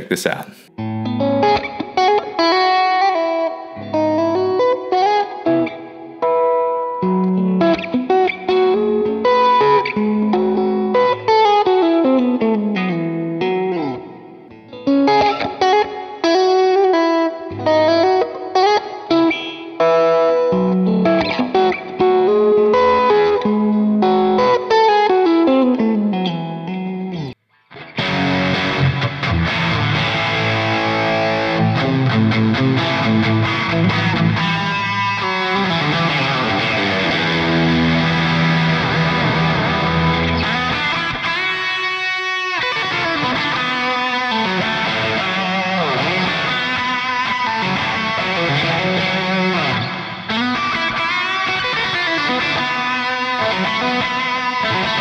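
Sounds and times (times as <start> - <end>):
electric guitar solo: 0.0 - 55.0.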